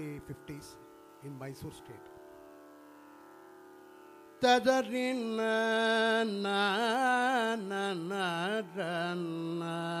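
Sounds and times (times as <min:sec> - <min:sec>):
faint tambura drone: 0:00.0 - 0:10.0.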